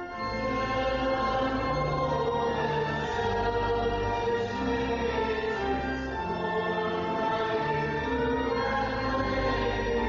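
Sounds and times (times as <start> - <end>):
musical accompaniment: 0.0 - 10.0
voices singing a hymn: 0.2 - 10.0.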